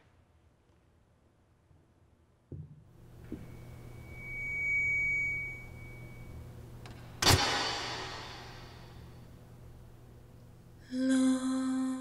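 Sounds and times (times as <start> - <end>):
low steady hum: 0.0 - 12.0
high steady electronic tone: 3.3 - 6.7.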